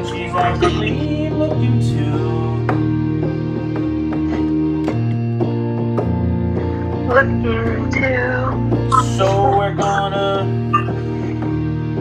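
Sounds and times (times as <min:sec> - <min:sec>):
electronic keyboard chords: 0:00.0 - 0:12.0.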